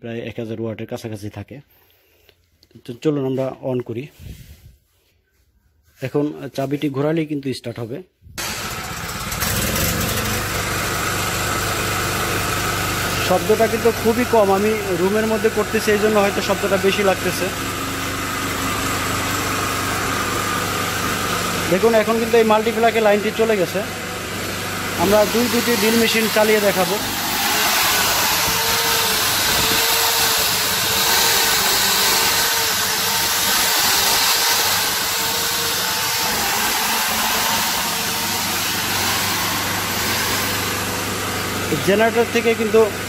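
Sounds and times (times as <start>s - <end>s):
portable generator running: 8.4s - 43.0s
high whine: 13.1s - 41.9s.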